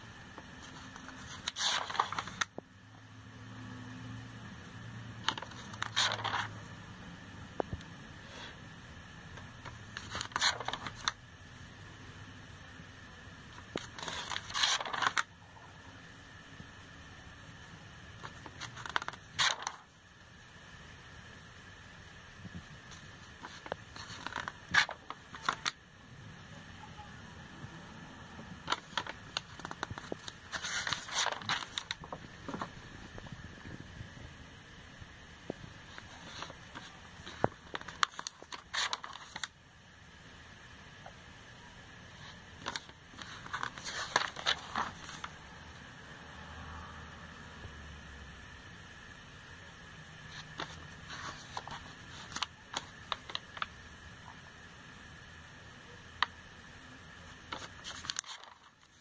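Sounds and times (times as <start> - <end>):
faint high whine: 0.0 - 59.0
faint steady hiss: 0.0 - 59.0.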